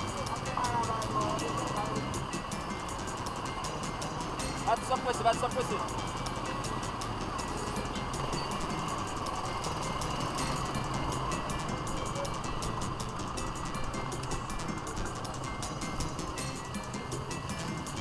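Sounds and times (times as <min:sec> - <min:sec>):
music with regular beat: 0:00.0 - 0:18.0
slow street traffic: 0:00.0 - 0:18.0.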